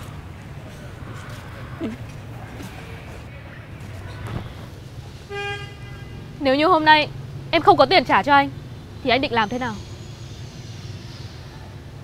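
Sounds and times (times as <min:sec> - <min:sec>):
vehicle horn beep: 0:05.3 - 0:06.3.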